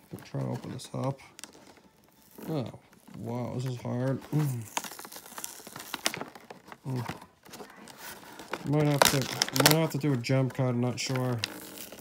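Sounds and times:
packaging crinkling open by hand: 0:00.0 - 0:12.0.

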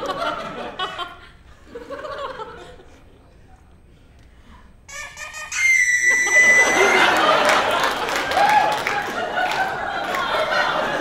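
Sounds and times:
audience laughter: 0:00.0 - 0:03.1, 0:06.0 - 0:11.0
high whistle tone: 0:04.9 - 0:07.3.

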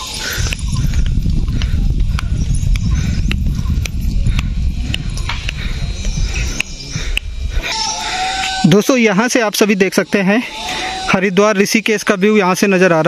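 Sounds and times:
footsteps on stony path: 0:00.0 - 0:08.6
wind buffeting microphone: 0:00.0 - 0:08.8.

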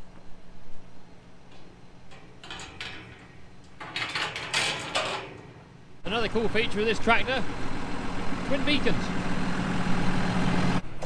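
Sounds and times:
metal gate rattling and clanking: 0:01.4 - 0:07.5.

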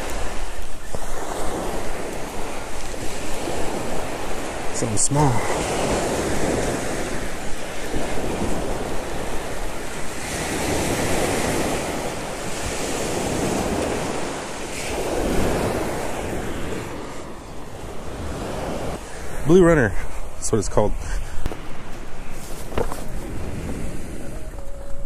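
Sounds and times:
waves breaking on beach: 0:00.0 - 0:25.0
wind buffeting microphone: 0:00.0 - 0:25.0.

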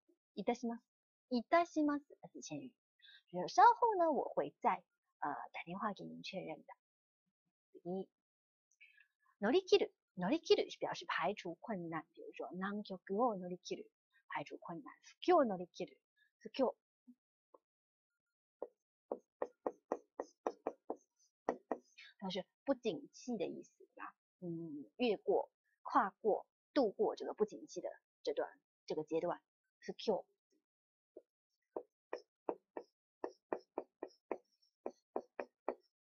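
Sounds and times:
marker tapping on board: 0:18.6 - 0:22.0, 0:31.2 - 0:35.9.

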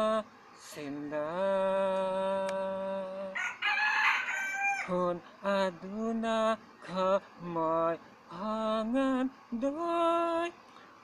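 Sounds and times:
man singing unaccompanied: 0:00.0 - 0:10.8
rooster crowing: 0:03.2 - 0:05.0.

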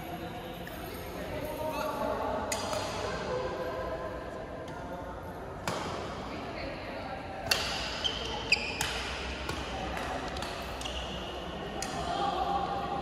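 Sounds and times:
rackets hitting shuttlecock: 0:02.5 - 0:03.2, 0:05.6 - 0:06.2, 0:07.4 - 0:11.1, 0:11.7 - 0:12.1
shoe squeaks on court: 0:08.0 - 0:09.0.

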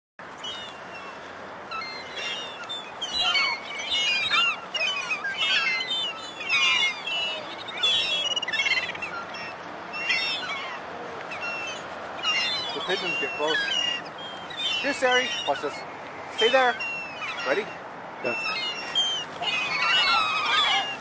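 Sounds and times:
gulls calling: 0:00.2 - 0:21.0.

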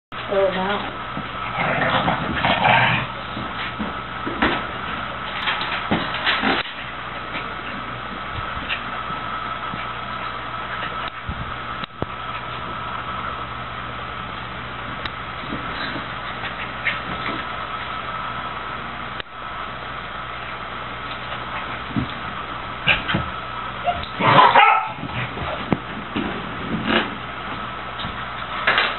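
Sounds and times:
electric fan humming: 0:00.1 - 0:28.9.

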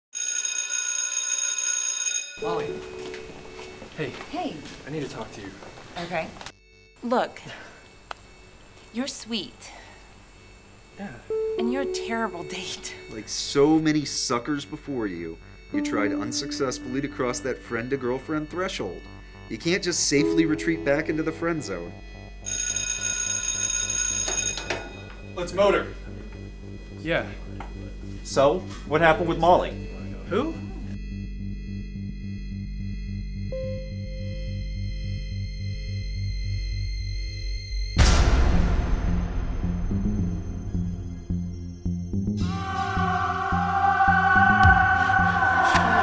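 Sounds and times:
electric bell ringing: 0:00.2 - 0:05.4, 0:11.3 - 0:27.5.

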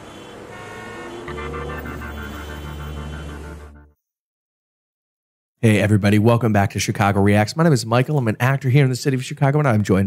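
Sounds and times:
city traffic: 0:00.0 - 0:03.9
car horn: 0:00.0 - 0:04.0.

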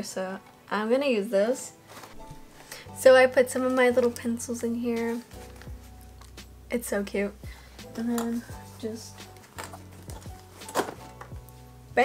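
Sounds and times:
background music: 0:00.0 - 0:12.0
supplies clattering on a desk: 0:09.2 - 0:11.4.

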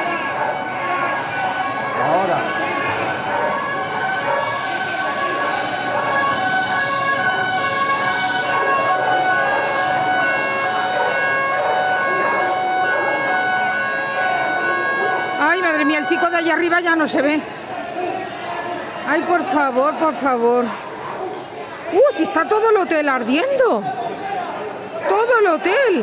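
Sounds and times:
emergency vehicle sirens: 0:00.0 - 0:26.0
noisy street background: 0:00.0 - 0:26.0.

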